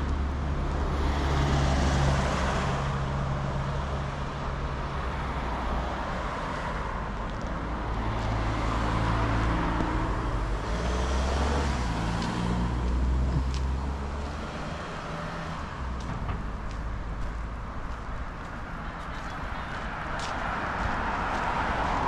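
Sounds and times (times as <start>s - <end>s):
cars driving past: 0.0s - 22.0s.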